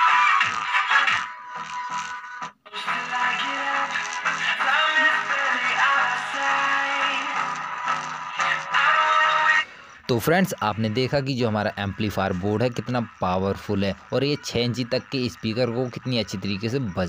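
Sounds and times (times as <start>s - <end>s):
song with singing from a speaker: 0.0s - 10.1s.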